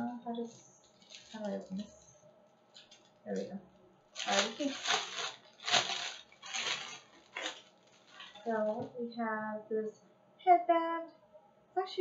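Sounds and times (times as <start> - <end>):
packaging rustling: 0.8 - 2.1, 4.1 - 8.8.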